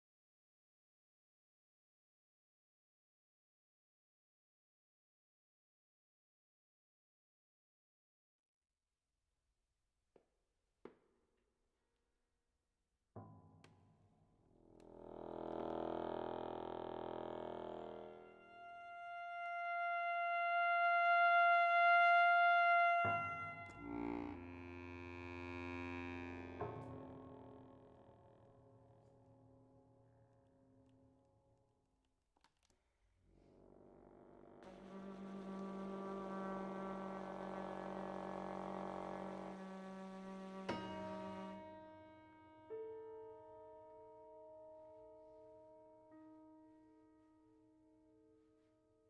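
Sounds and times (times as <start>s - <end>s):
accordion and trumpet drone: 15.3s - 26.8s, 34.6s - 41.6s.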